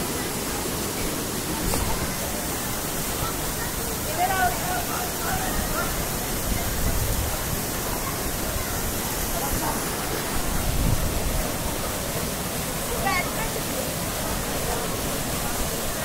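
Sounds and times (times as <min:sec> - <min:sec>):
faint voices: 0:00.0 - 0:16.0
waterfall rushing into pool: 0:00.0 - 0:16.0.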